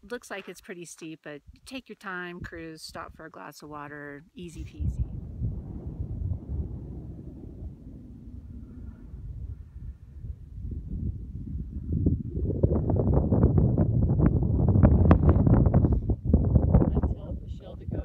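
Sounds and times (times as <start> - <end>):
wind buffeting microphone: 4.4 - 18.0.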